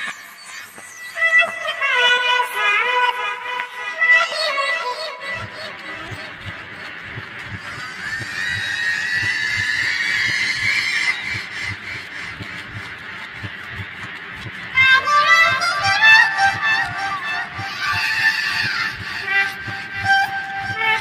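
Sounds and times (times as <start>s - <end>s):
quick low beat: 5.4s - 21.0s.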